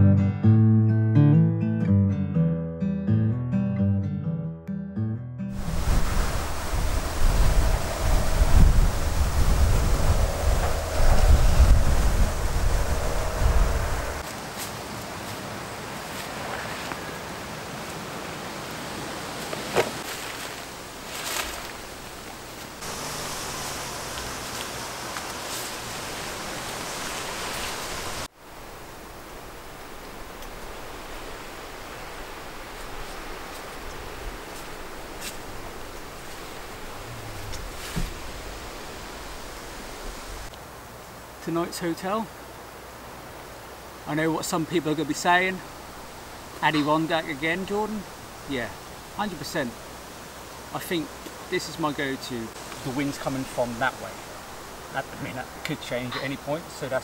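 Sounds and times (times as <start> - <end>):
steady outdoor hiss: 5.5 - 57.0
wind buffeting microphone: 5.6 - 14.2.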